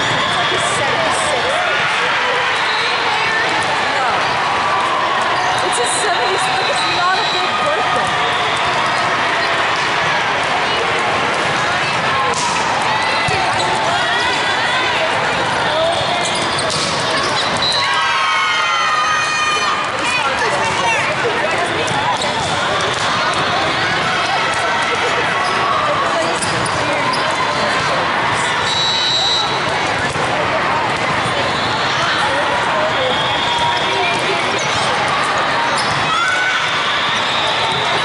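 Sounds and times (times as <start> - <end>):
many voices in a hall: 0.0 - 38.0
sneakers squeaking on court floor: 13.0 - 14.5, 15.8 - 17.9, 20.1 - 24.0, 25.3 - 27.9, 32.8 - 36.4.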